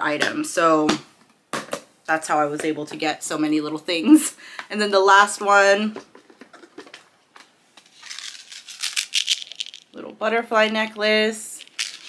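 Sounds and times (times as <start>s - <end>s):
packaged trinkets rattling and rustling: 7.8s - 10.0s, 11.6s - 12.0s.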